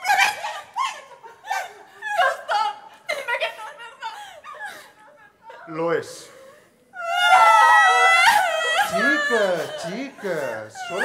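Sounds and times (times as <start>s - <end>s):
women wailing theatrically: 0.0s - 5.4s, 6.9s - 11.0s.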